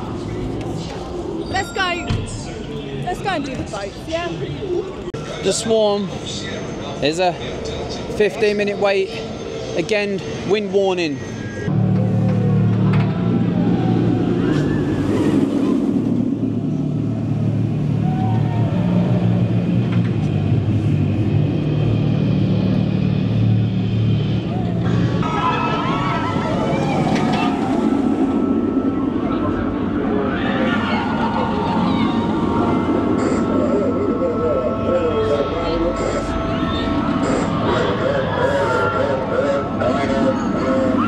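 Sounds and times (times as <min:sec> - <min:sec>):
indistinct voices: 0:00.0 - 0:41.0
loud low drone: 0:06.1 - 0:41.0
higher steady tone: 0:31.0 - 0:41.0.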